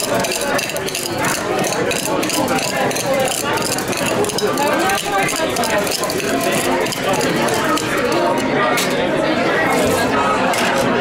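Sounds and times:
coffee beans crushed in metal tin: 0.0 - 8.3
people talking: 0.0 - 11.0.

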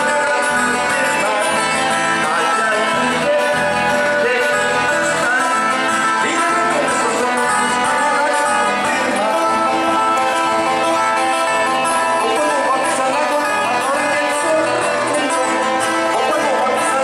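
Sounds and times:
folk dance music on guitars: 0.0 - 17.0.

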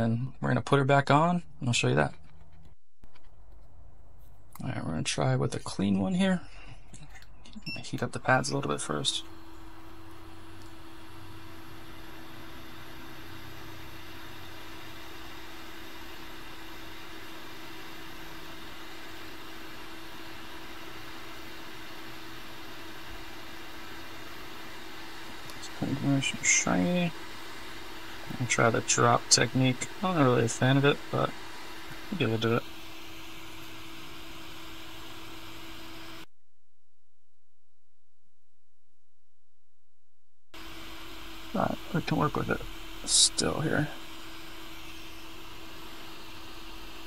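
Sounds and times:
constant low hum: 0.0 - 36.3
hot air gun rushing hiss: 10.3 - 36.2.

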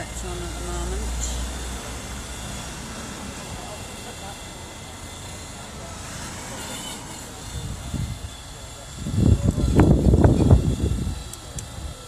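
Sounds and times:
indistinct distant voices: 0.0 - 12.0.

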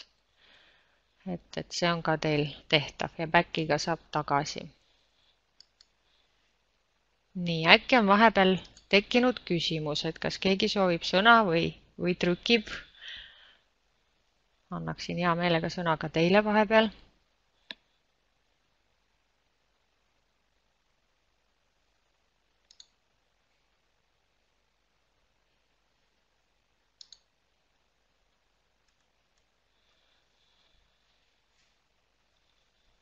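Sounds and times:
faint computer mouse clicks: 5.6 - 6.0, 22.6 - 23.0, 27.0 - 27.3.

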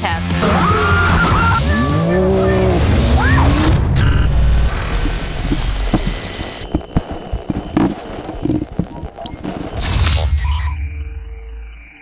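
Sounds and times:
digital glitch burst: 3.6 - 12.0.

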